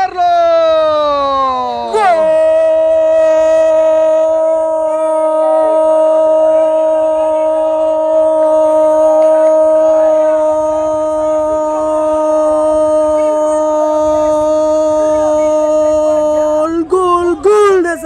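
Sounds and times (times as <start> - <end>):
man shouting excitedly: 0.0 - 4.2
man's held goal cry: 0.0 - 5.8.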